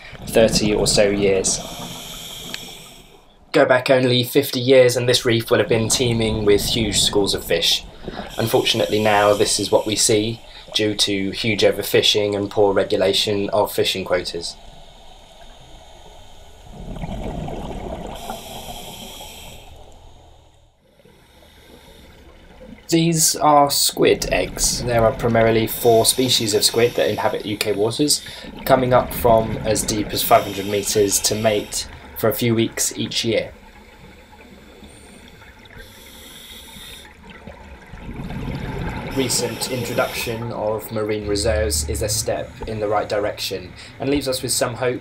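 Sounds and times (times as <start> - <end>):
exhaled bubbles gurgling underwater: 0.0 - 3.6, 4.9 - 45.0
regulator inhale hiss: 1.6 - 3.3, 7.8 - 11.1, 14.5 - 16.8, 18.1 - 22.3, 25.7 - 28.6, 30.1 - 32.2, 33.7 - 37.2, 39.1 - 40.5.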